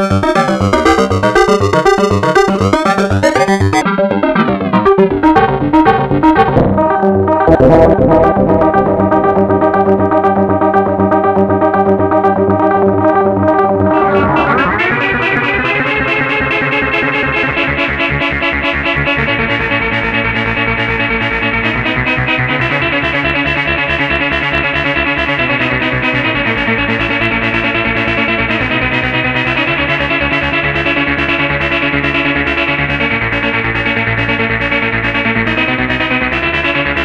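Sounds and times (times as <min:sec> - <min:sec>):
analog synthesizer chord: 0:00.0 - 0:03.8, 0:04.9 - 0:17.4.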